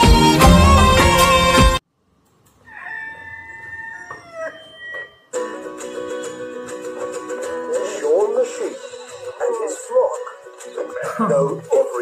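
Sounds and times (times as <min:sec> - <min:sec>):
rooster crowing: 0:02.6 - 0:05.2.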